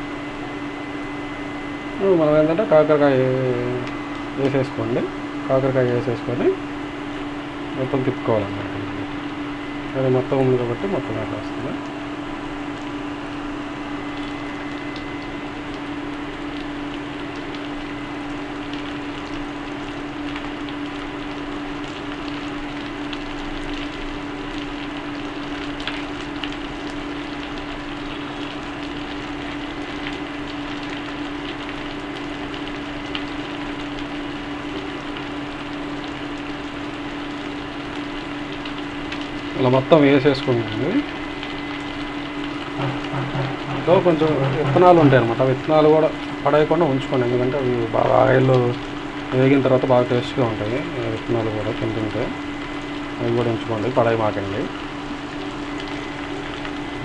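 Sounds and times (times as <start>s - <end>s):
cooling fan humming: 0.0s - 57.0s
food crackling in a pan: 11.6s - 57.0s.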